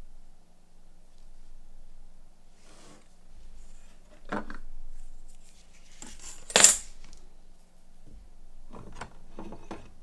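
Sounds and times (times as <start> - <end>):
tools clicking and knocking: 6.2 - 6.9.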